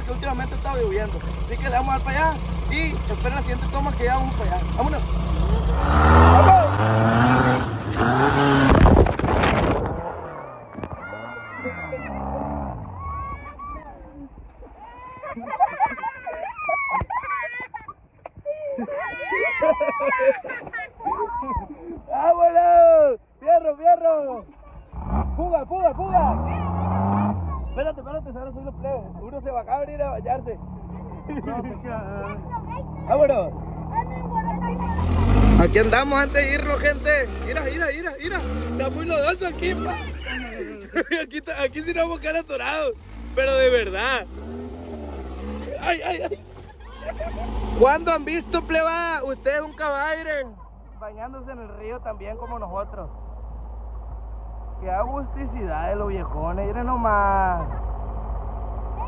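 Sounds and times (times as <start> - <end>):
dune buggy engine revving: 0.0 - 14.3, 24.6 - 59.0
person shouting: 5.6 - 6.8, 11.0 - 12.3.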